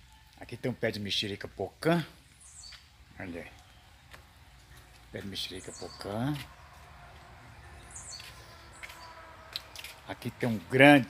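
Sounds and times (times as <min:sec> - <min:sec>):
faint outdoor ambience: 0:00.0 - 0:11.0
high bird chirp: 0:02.3 - 0:06.8, 0:07.5 - 0:10.0.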